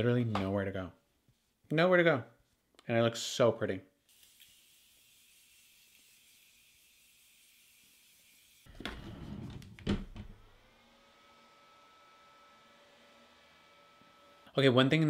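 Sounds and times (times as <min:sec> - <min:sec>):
handheld fan motor whine: 0:10.4 - 0:14.8.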